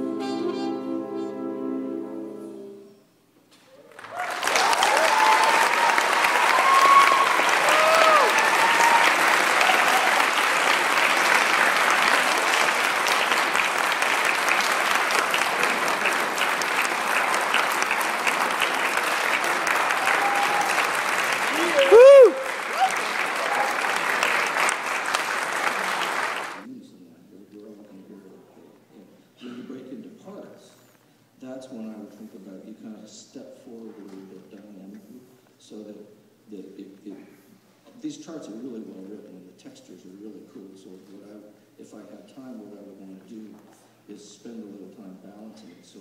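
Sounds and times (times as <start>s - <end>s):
audience cheering and whooping: 3.8s - 26.6s
audience applauding: 3.8s - 26.7s.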